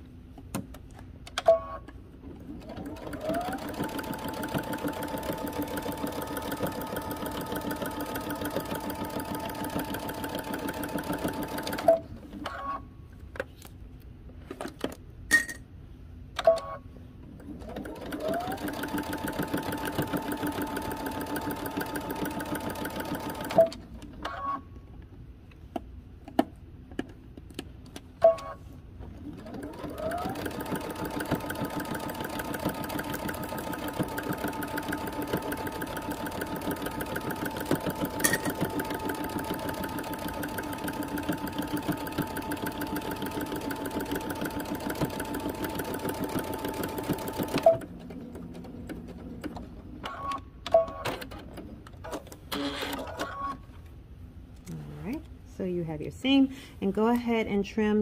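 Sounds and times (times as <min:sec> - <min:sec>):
sewing machine stitching: 0:02.3 - 0:12.7, 0:17.4 - 0:23.8, 0:29.2 - 0:50.4
sewing machine clicks: 0:29.4 - 0:47.9.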